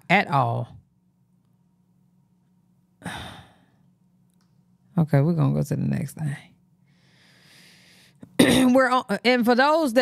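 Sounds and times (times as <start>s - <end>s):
woman sighing: 3.0s - 3.8s.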